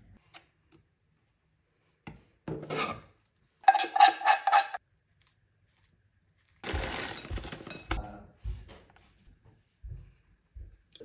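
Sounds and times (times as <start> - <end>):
frozen berries rattling from plastic bag: 6.6 - 8.0.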